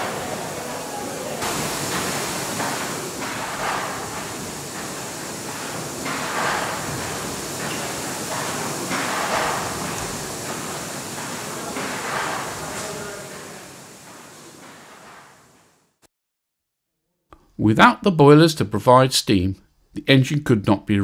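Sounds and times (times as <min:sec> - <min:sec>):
steam engine hissing rhythmically: 0:00.0 - 0:15.8.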